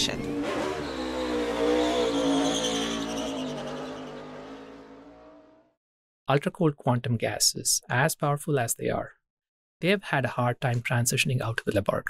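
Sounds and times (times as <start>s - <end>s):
race car engine steady pitch: 0.0s - 5.7s.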